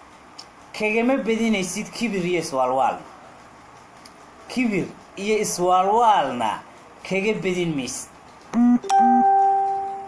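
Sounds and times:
two-note ringing tone: 8.6s - 10.0s.

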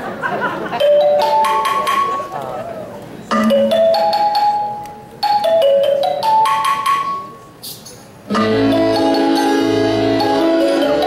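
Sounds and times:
bell-like accordion melody: 0.8s - 2.3s, 8.3s - 11.0s.

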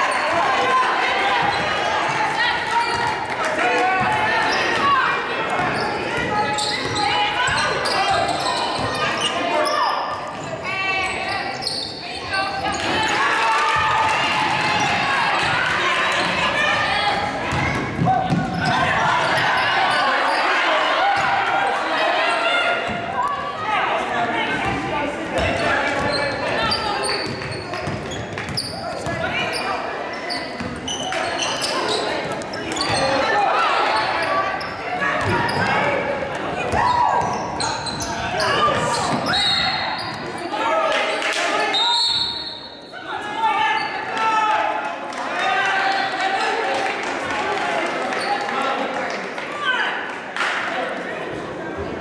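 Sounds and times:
basketball bouncing on court: 17.4s - 19.4s, 27.2s - 29.3s.

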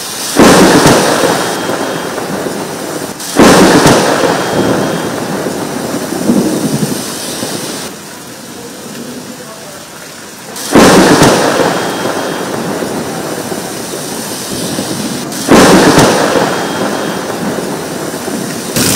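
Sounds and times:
rolling thunderclaps: 0.0s - 8.0s, 10.6s - 18.9s
heavy rain: 0.0s - 18.9s.

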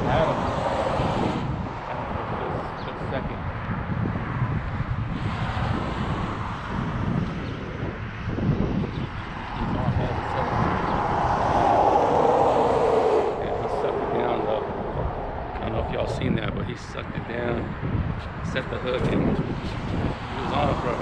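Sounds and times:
wind buffeting microphone: 0.0s - 21.0s
steady hum: 9.5s - 18.7s.

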